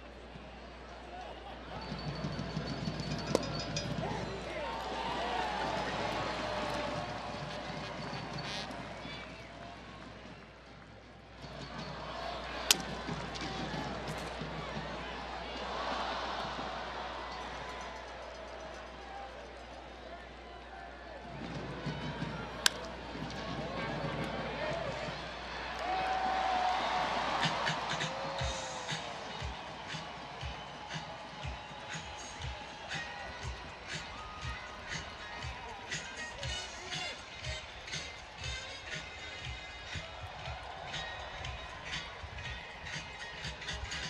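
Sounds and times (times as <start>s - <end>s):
crowd murmur: 0.0s - 44.0s
baseball bat crack: 12.5s - 14.4s, 22.6s - 23.5s.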